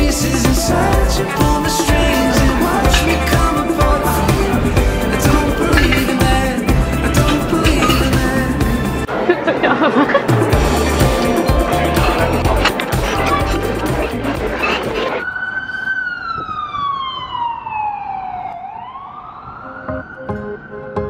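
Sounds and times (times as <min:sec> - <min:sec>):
emergency vehicle siren wailing: 0:00.0 - 0:08.0, 0:14.5 - 0:21.0
light plucked music: 0:00.0 - 0:09.1, 0:10.3 - 0:15.0
music with a heavy beat: 0:00.0 - 0:09.1, 0:10.2 - 0:15.2.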